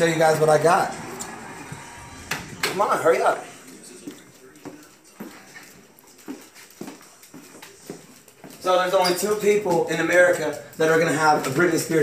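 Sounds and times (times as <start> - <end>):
footsteps on hardwood floor: 1.2 - 12.0.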